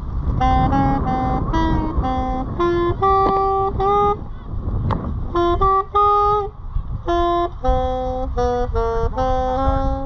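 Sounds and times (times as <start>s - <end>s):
solo wind instrument melody: 0.0s - 10.0s.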